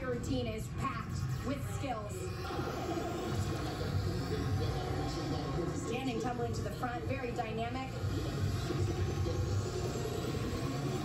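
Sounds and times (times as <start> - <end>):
muffled bass-heavy music on television: 0.0 - 11.0.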